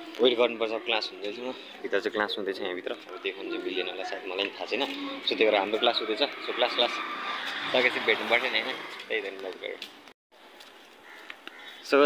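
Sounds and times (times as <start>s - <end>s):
street background noise: 0.0s - 12.0s
man talking: 0.2s - 9.8s.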